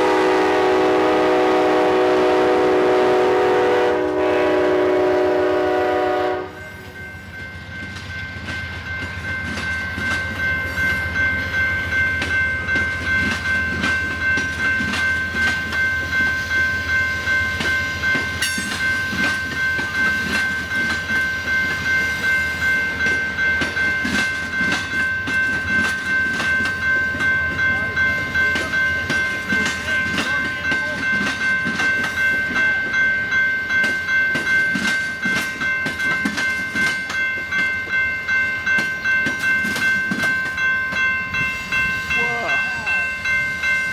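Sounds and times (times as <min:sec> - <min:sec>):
crossing bell ringing: 0:00.0 - 0:43.9
train wheels clicking on rail: 0:06.5 - 0:43.9.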